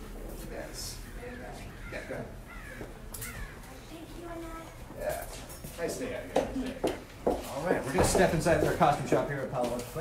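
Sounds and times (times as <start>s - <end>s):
low outdoor background: 0.0s - 10.0s
crow cawing: 1.0s - 3.9s.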